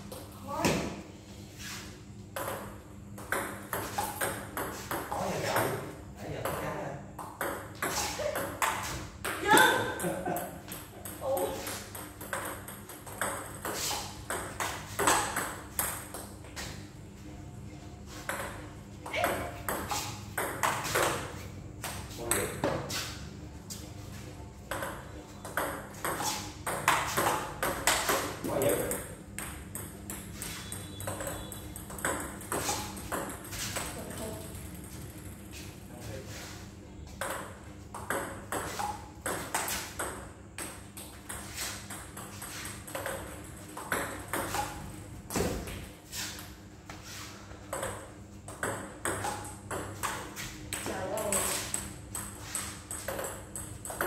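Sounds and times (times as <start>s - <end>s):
table tennis balls clicking: 6.5s - 16.4s, 24.7s - 35.4s, 37.2s - 44.9s, 47.6s - 54.0s.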